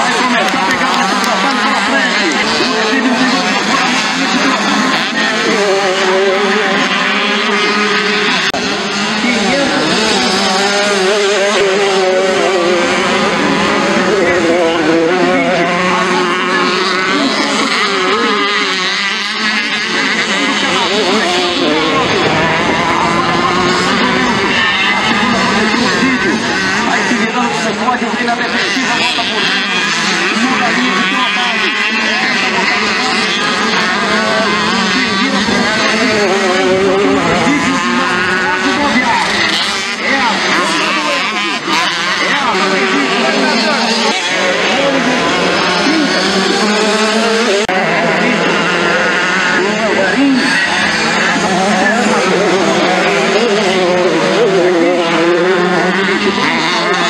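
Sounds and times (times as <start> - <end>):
motocross bikes revving: 0.0 - 57.0.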